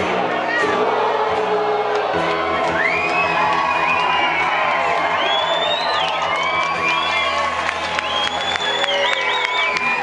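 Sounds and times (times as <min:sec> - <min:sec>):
crowd cheering and whooping: 0:00.0 - 0:10.0.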